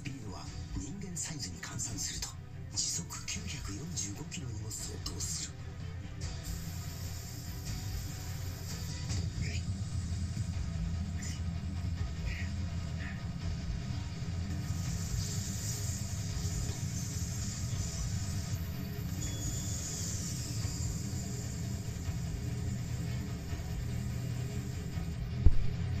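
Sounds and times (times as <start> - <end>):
high hiss: 6.3 - 11.5, 14.4 - 25.3
low rumble: 9.2 - 15.2
loud thump: 25.4 - 25.8.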